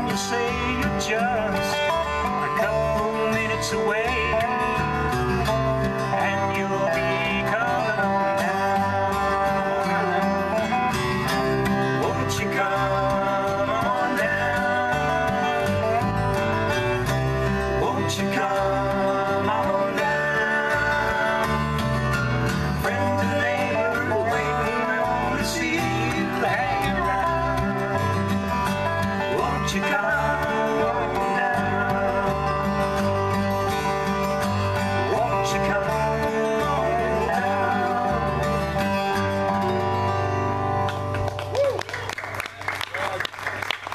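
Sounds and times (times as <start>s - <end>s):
strummed acoustic guitar: 0.0s - 41.5s
slide guitar notes: 0.0s - 41.6s
electric bass: 0.0s - 42.1s.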